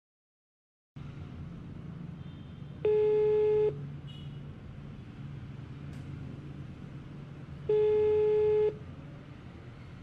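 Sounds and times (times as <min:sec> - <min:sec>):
low steady hum: 0:01.0 - 0:10.0
buzzy ringback beep: 0:02.9 - 0:03.7, 0:07.7 - 0:08.8.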